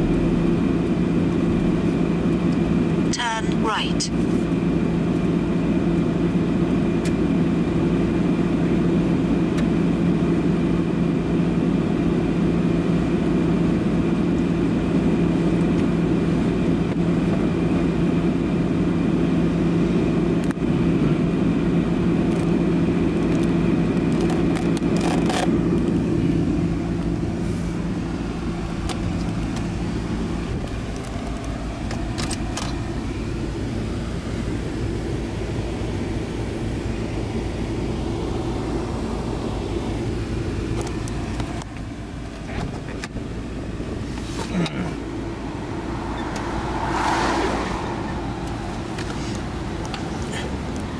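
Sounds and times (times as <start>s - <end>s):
steady low hum: 0.0s - 18.7s, 32.8s - 50.9s
car road noise from cabin: 0.0s - 50.9s.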